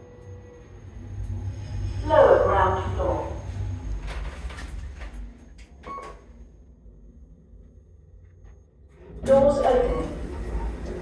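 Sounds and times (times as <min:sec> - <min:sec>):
lift hum: 0:00.0 - 0:11.0
brief tone: 0:05.4 - 0:06.5.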